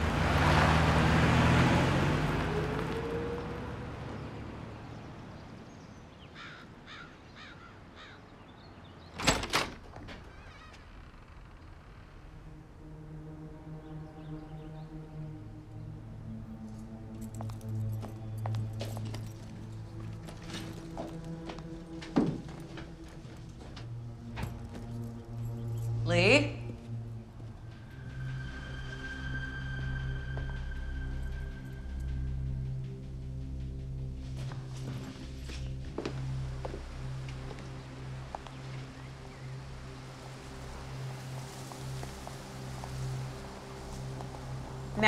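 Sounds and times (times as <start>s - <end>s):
taxi pulling away: 0.0s - 5.3s
low droning background score: 10.9s - 45.0s.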